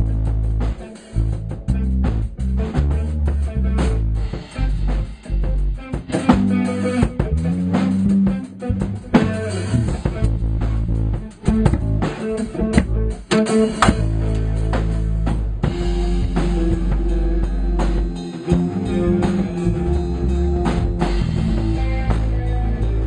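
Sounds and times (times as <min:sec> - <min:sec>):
deep bass line: 0:00.0 - 0:23.0
drums: 0:00.0 - 0:23.0
loud electric guitar: 0:00.0 - 0:23.0.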